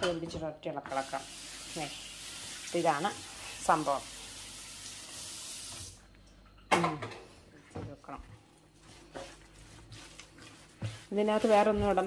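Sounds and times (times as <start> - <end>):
kitchen tap running: 0.9 - 6.0, 8.8 - 12.0.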